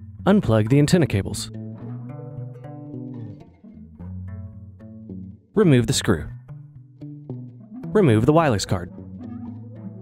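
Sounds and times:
plucked string notes: 1.5s - 5.4s.

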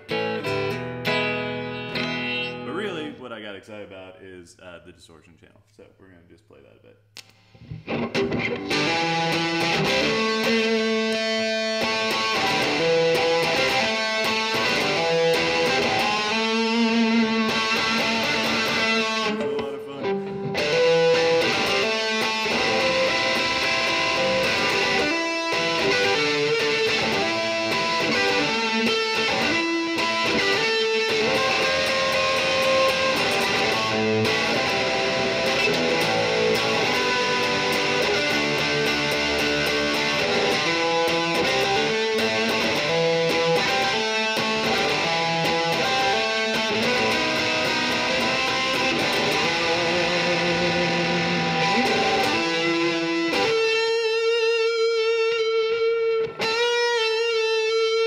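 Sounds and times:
distorted electric guitar: 0.0s - 3.1s, 7.2s - 58.0s.

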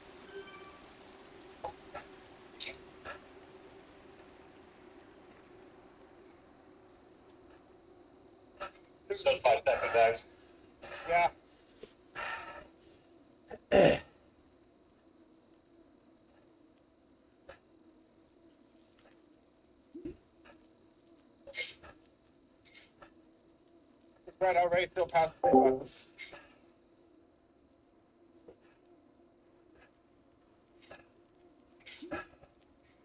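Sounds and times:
faint steady hum: 0.0s - 33.0s.

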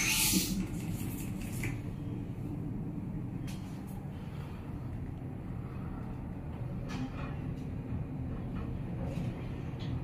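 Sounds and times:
lift low rumble: 0.5s - 10.0s.

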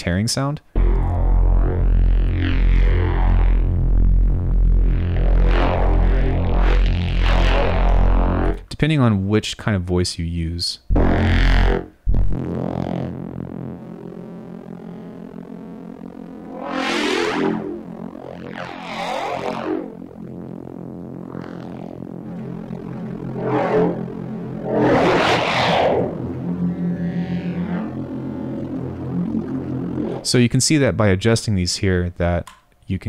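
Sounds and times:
synth bass note: 0.7s - 8.6s, 10.8s - 30.4s
bright sweeping synth swells: 11.0s - 30.4s.

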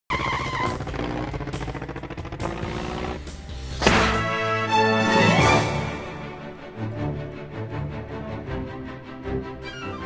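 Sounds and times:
vehicle engine: 0.1s - 4.3s.

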